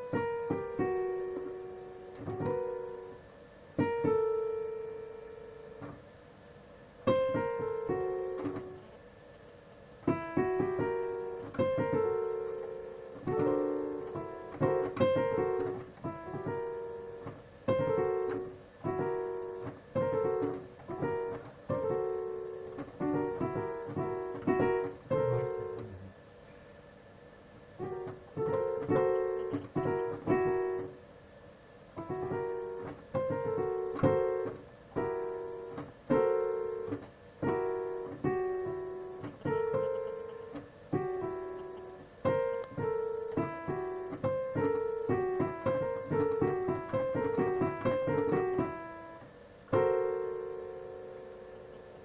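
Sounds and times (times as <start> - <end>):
digital piano melody and chords: 0.0 - 6.1, 7.0 - 9.0, 10.0 - 26.1, 27.8 - 31.0, 32.0 - 52.0.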